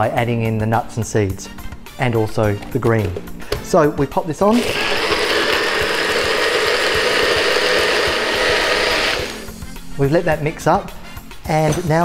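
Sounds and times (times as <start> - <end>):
blender motor running: 4.6 - 9.6.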